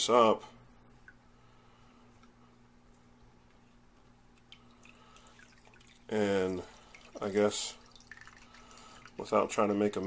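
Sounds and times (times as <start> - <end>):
water dripping and trickling: 4.3 - 9.5.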